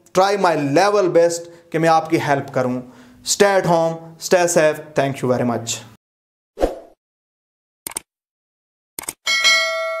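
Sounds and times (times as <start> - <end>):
bell chime: 9.3 - 10.0.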